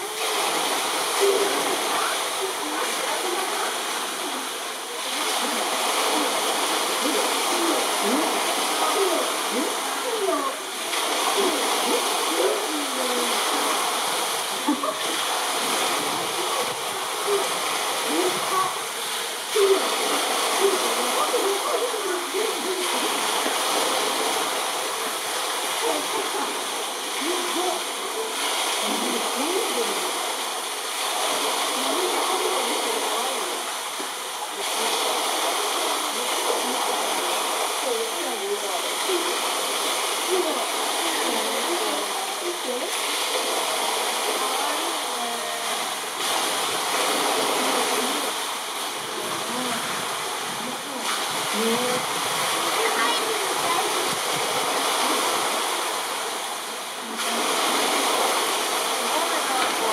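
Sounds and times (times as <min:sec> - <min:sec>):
faint voices chattering: 0:00.0 - 0:59.9
rushing water: 0:00.0 - 0:59.9.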